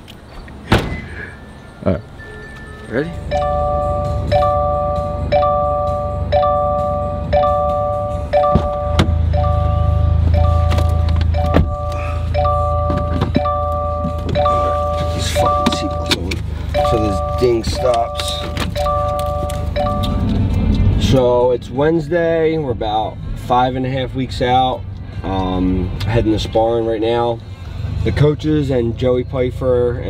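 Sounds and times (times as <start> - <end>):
car engine running low: 0.4 - 24.3
car door and trunk thunks: 0.6 - 1.2, 8.3 - 9.5, 10.4 - 16.5, 17.4 - 20.2
car warning chime: 0.9 - 20.4.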